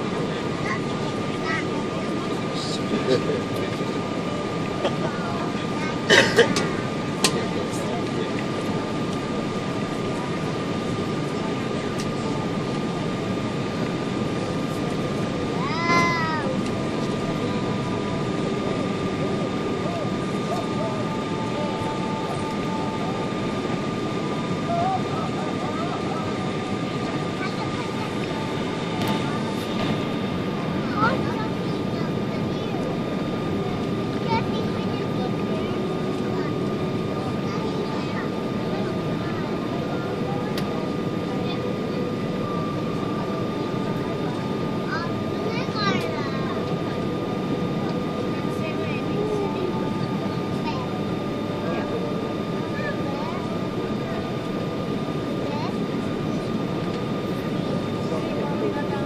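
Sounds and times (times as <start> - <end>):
aircraft cabin engine rush: 0.0 - 59.0
faint voices: 0.0 - 59.0
thin steady whine: 0.0 - 59.0.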